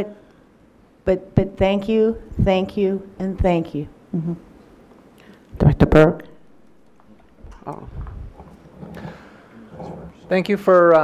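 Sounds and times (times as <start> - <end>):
low room noise: 0.0 - 11.0.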